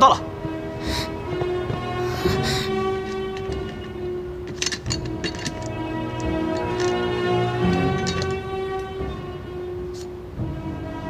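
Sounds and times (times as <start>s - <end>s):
tense sustained orchestral chord: 0.0s - 11.0s.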